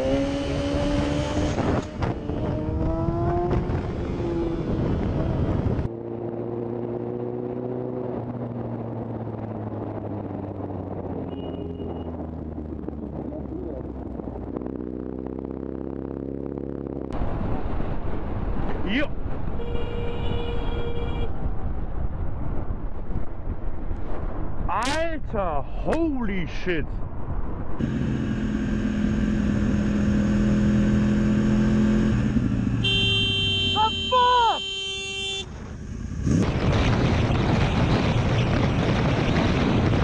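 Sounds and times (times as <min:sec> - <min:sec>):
vehicle drone: 0:00.0 - 0:19.7, 0:25.8 - 0:40.0
vehicle horn blaring: 0:19.6 - 0:21.3, 0:32.8 - 0:35.5
person crying out: 0:33.7 - 0:34.7.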